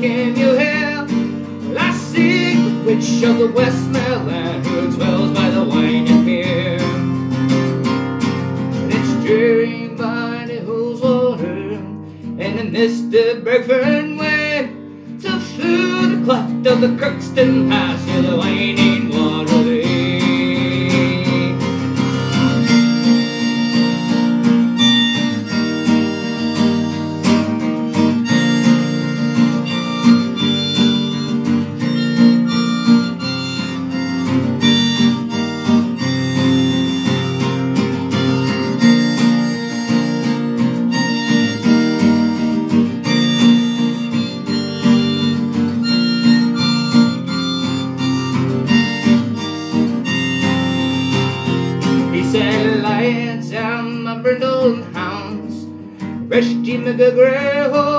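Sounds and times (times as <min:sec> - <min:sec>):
harmonica melody: 0:00.0 - 0:57.9
strummed acoustic guitar: 0:00.0 - 0:57.9.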